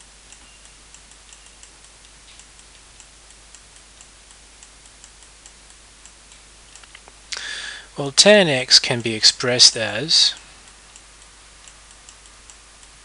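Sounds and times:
low hiss and hum: 0.0s - 13.0s.

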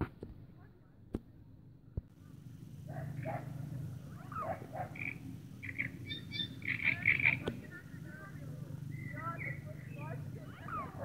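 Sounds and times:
steady low hum: 0.0s - 11.0s
distant voices: 0.4s - 11.0s
frogs calling: 2.8s - 11.0s.

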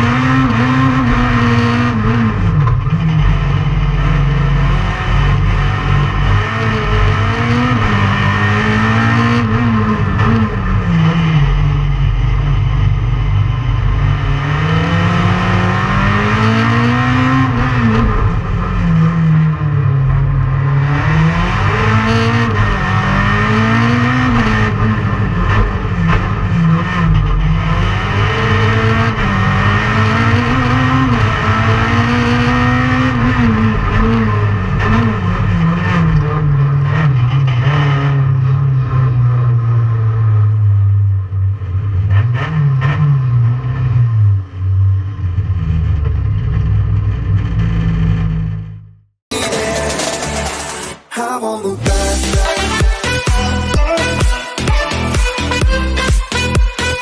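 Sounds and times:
race car engine revving: 0.0s - 51.1s, 51.8s - 57.0s.

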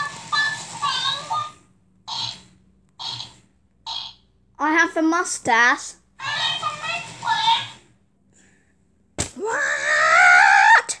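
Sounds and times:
high-pitched screaming voice: 9.4s - 11.0s.

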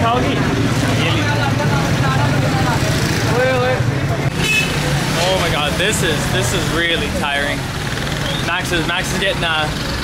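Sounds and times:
crowd chatter: 0.0s - 9.8s.

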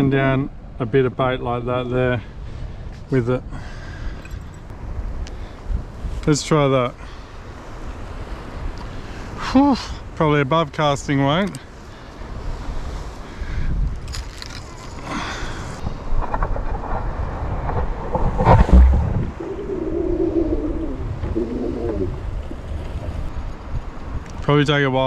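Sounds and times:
wind rumbling on microphone: 0.0s - 25.0s
ocean swell: 3.5s - 24.4s.

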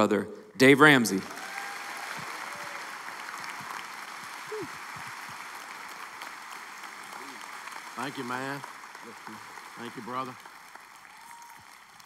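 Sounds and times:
large audience applauding: 0.8s - 12.0s.

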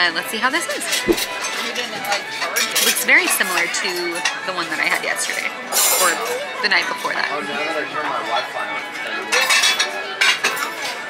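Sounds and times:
cutlery and dishes clinking: 9.4s - 11.0s.

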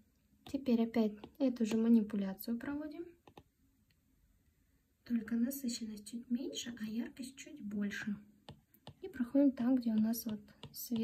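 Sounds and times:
stylus tapping glass screen: 0.4s - 2.1s, 3.2s - 3.5s, 8.4s - 11.0s.

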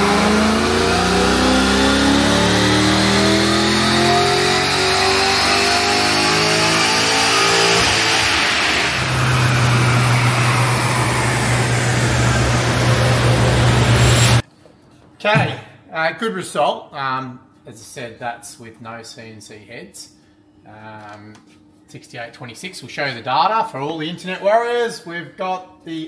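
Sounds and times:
engine revving on dyno: 0.0s - 14.4s.

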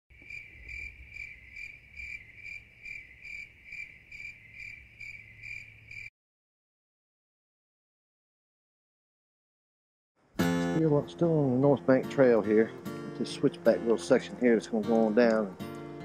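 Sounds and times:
cricket chirping: 0.1s - 6.1s.

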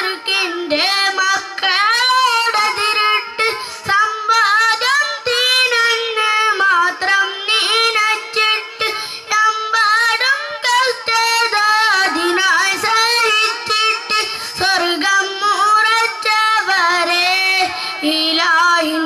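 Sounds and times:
boy singing solo: 0.0s - 19.0s.

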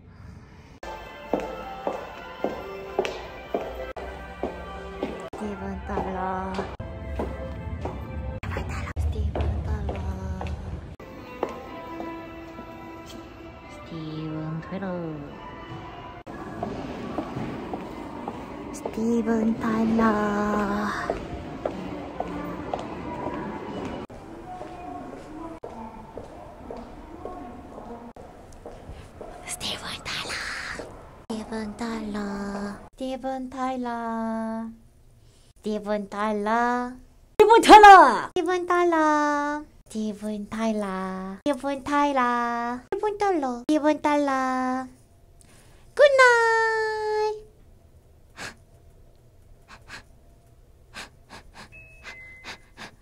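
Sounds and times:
woman whispering breathily: 29.4s - 30.8s.

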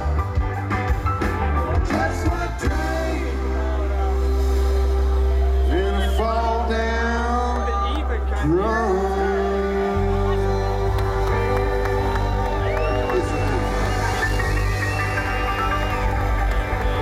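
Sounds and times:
drums: 0.0s - 6.6s, 10.0s - 17.0s.

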